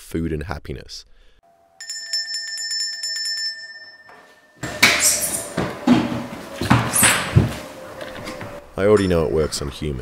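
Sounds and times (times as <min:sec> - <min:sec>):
handbell ringing rapidly: 0:01.8 - 0:04.1.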